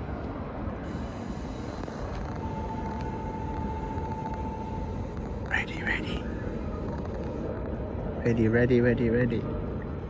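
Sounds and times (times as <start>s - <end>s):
city traffic: 0.0s - 10.0s
distant trains rumbling: 0.0s - 10.0s
steady high tone: 0.8s - 7.5s.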